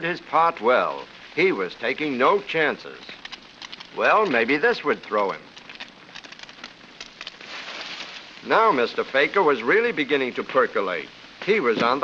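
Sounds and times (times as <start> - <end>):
fire crackling: 0.0 - 12.0
water rushing through hose: 0.3 - 12.0.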